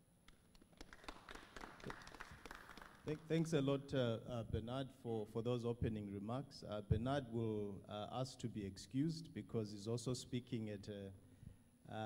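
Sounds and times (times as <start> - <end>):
faint applause: 0.8 - 3.2.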